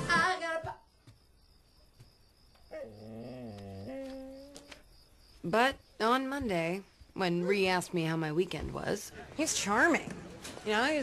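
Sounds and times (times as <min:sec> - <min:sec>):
dog whining: 0:02.7 - 0:04.8.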